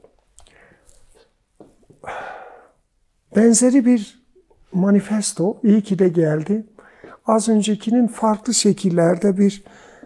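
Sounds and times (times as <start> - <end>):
man's sharp intake of breath: 2.0 - 2.8
man speaking: 3.3 - 9.7.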